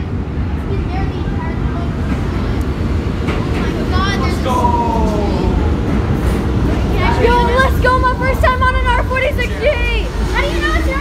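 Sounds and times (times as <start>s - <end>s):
subway train rumbling: 0.0s - 11.0s.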